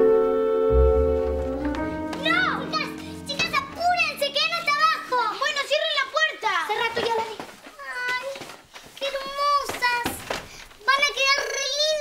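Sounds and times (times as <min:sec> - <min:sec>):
background music with held chords: 0:00.0 - 0:04.4
children's excited voices: 0:02.1 - 0:12.0.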